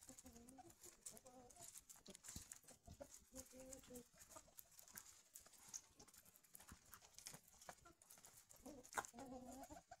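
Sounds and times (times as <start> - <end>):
birds pecking at food: 0.0 - 10.0
hen clucking: 0.0 - 10.0.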